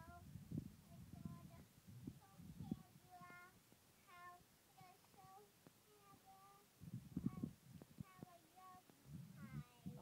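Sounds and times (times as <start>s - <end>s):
toddler singing: 0.0s - 10.0s.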